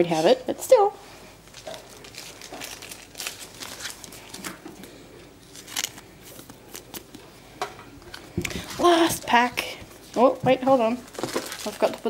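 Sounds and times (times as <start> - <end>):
trading cards rustling: 1.5 - 4.5, 5.4 - 7.2.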